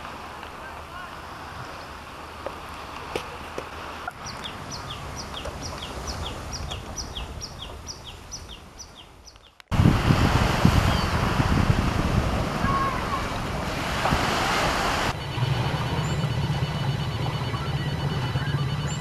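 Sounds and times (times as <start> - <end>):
surf washing on beach: 0.0 - 8.8, 9.7 - 16.0
wind buffeting microphone: 3.3 - 19.0
low hum: 15.0 - 19.0.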